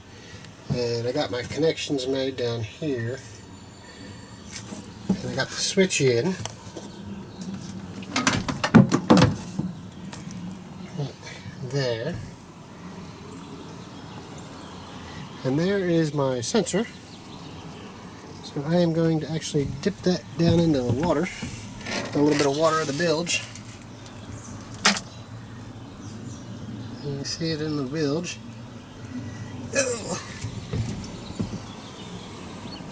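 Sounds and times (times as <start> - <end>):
knocks and clatters on boat deck: 8.1 - 9.8, 19.4 - 22.5, 30.3 - 31.8.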